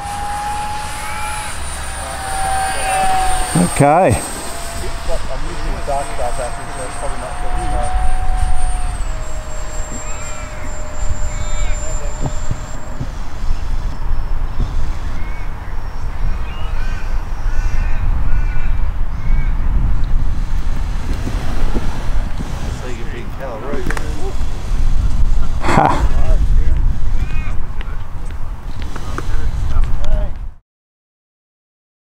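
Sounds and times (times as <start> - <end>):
birds chirping and cawing: 0.0 - 19.7
low rumble: 0.0 - 28.6
electric ducted fan whining: 0.0 - 30.4.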